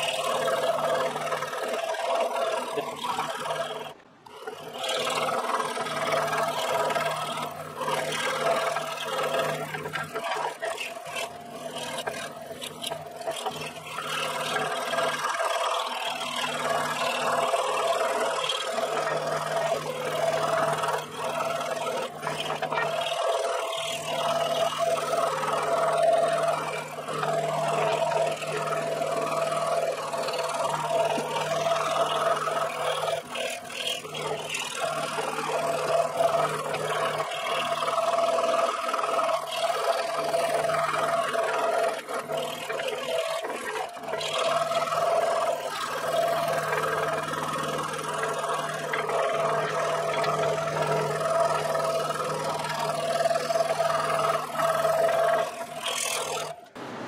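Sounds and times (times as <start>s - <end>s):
scroll saw cutting wood: 0.0s - 57.0s.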